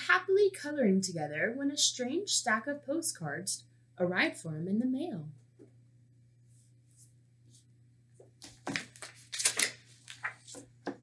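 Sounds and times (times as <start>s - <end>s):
faint low hum: 0.0s - 10.9s
paper page rustling: 8.4s - 10.8s.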